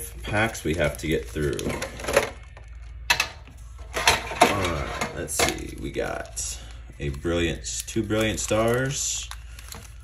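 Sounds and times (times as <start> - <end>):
plastic insert and foil packs clattering: 0.2 - 2.5, 3.1 - 10.0.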